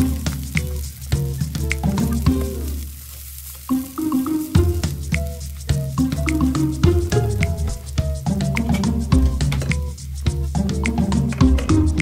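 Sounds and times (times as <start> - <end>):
background music: 0.0 - 3.0, 3.6 - 12.0
fried rice sizzling in a pan: 0.0 - 10.4.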